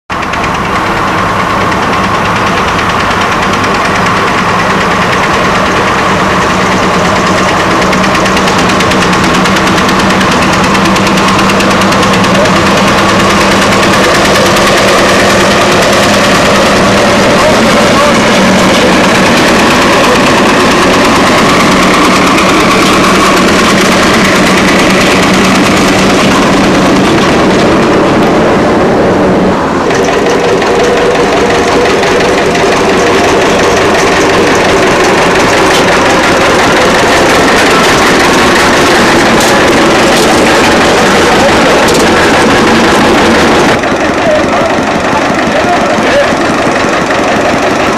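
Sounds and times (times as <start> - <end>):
tractor engine running: 0.0 - 47.9.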